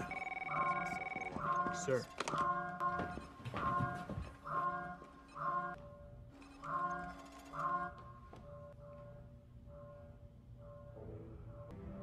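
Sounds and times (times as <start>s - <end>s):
electronic ringing signal: 0.0s - 5.8s
film score music: 0.0s - 12.0s.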